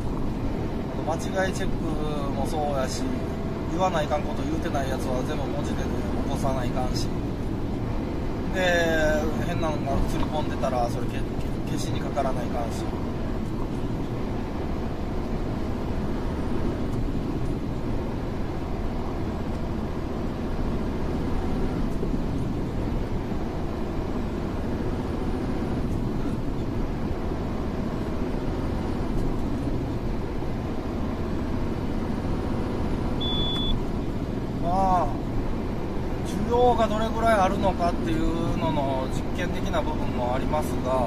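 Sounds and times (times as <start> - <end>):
road and engine noise in car: 0.0 - 41.0.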